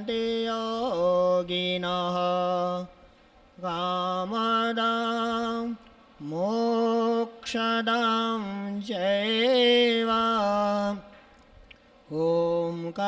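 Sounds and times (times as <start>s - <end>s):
man chanting: 0.0s - 3.0s, 3.6s - 11.1s, 12.1s - 13.0s.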